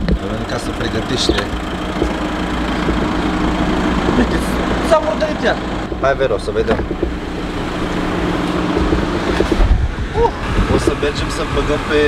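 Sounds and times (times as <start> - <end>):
car engine idling: 0.0 - 12.0
air conditioning blowing: 0.2 - 12.0
dull thump: 6.6 - 7.2.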